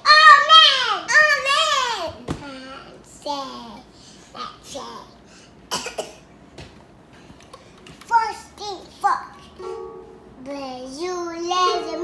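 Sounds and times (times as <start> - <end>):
child coughing: 5.7 - 6.3.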